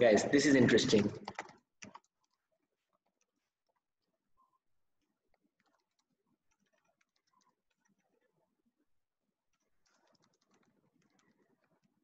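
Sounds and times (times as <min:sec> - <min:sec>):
person speaking: 0:00.0 - 0:01.4
computer keyboard typing: 0:00.9 - 0:03.8, 0:05.3 - 0:08.3, 0:09.4 - 0:12.0.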